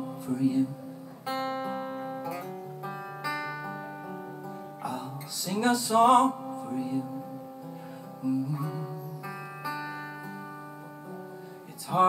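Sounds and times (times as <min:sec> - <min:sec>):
acoustic guitar notes ringing: 0:00.0 - 0:12.0
person singing: 0:04.8 - 0:09.7.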